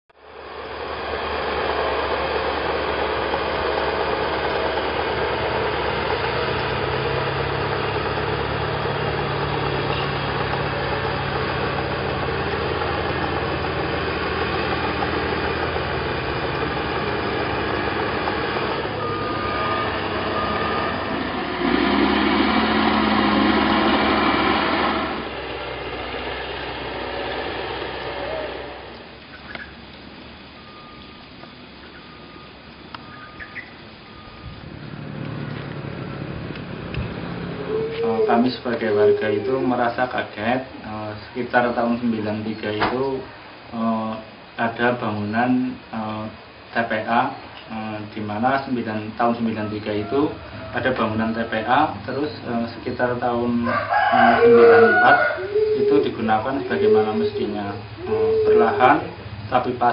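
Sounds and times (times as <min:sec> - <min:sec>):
bulldozer engine running: 0:00.2 - 0:59.9.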